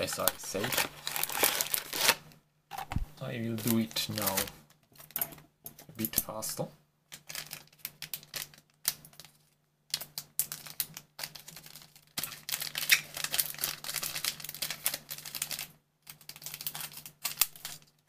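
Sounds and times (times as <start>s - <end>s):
plastic wrappers crinkling: 0.0s - 5.3s, 7.1s - 18.0s.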